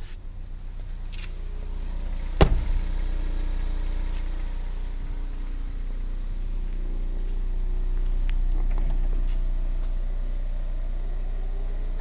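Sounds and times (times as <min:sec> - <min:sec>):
car engine idling: 0:00.0 - 0:12.0
car door shutting: 0:01.1 - 0:05.0.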